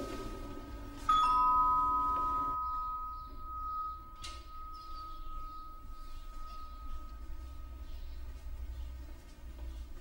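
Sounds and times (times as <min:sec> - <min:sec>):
electronic doorbell chime: 0:01.1 - 0:08.1.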